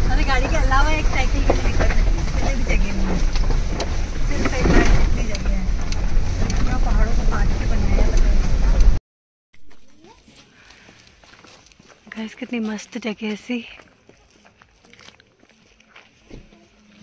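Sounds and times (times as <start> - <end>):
vehicle engine and tyres rumbling: 0.0 - 9.0.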